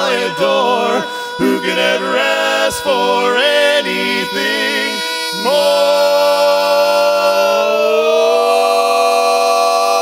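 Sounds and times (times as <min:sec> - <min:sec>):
male voices singing a cappella chord: 0:00.0 - 0:10.0.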